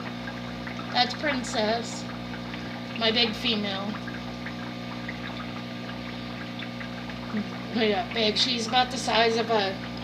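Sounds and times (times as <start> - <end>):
water bubbling: 0.0 - 10.0
water pump humming: 0.0 - 10.0.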